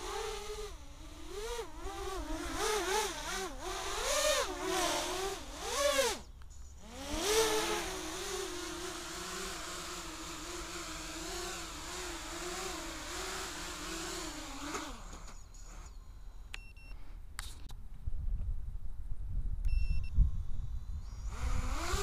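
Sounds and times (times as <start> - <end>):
quadcopter motors whining: 0.0 - 16.5, 20.3 - 22.0.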